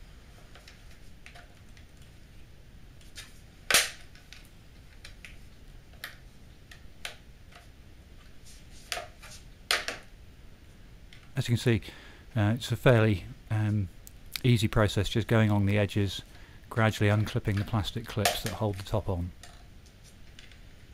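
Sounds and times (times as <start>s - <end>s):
plastic clips popping: 3.7s - 5.4s.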